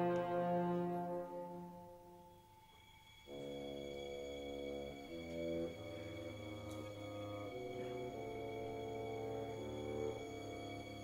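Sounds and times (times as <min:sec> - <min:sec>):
orchestral chord: 0:00.0 - 0:02.4, 0:03.2 - 0:11.0.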